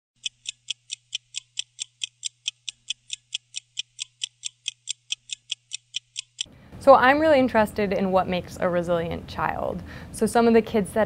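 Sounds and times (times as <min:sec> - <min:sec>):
fast clock ticking: 0:00.2 - 0:06.5.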